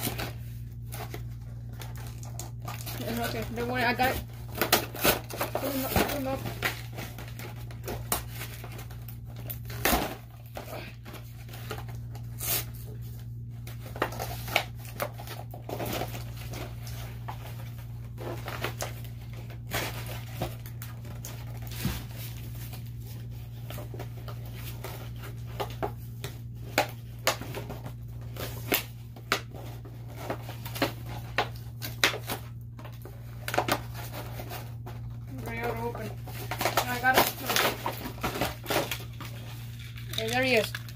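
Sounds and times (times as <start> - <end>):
plastic packaging crinkling: 0.0 - 40.9.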